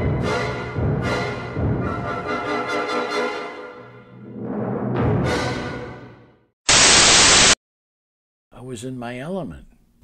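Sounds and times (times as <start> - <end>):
burst of white-noise static: 6.7 - 7.6.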